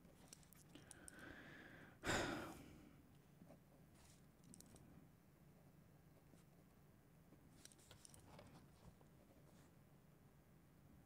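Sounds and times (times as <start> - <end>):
person sighing: 1.0 - 2.9.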